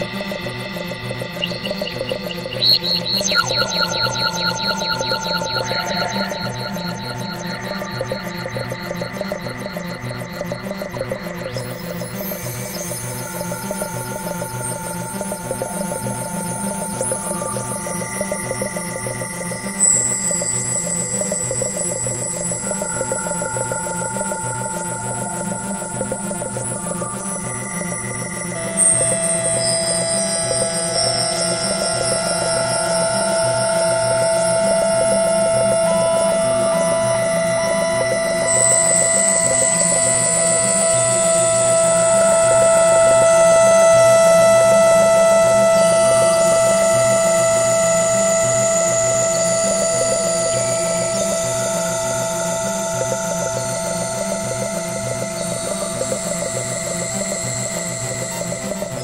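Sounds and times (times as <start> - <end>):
ambient synthesizer music: 0.0 - 59.0.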